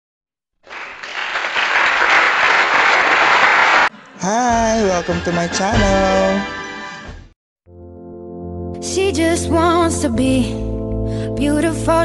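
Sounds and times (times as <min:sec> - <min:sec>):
crowd applauding: 0:00.6 - 0:04.4.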